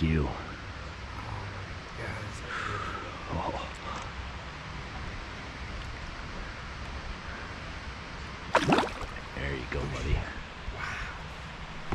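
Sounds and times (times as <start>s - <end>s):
stream water rippling: 3.8s - 11.9s.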